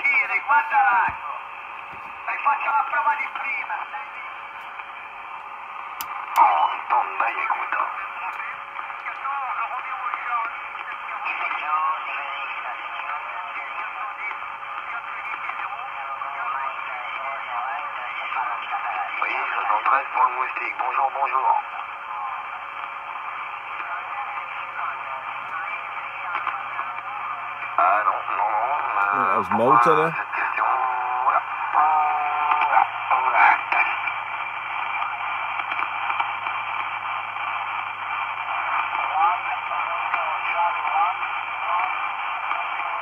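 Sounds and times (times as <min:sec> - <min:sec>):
faint unclear radio voices: 0:00.0 - 0:43.0
radio static hiss: 0:00.0 - 0:43.0.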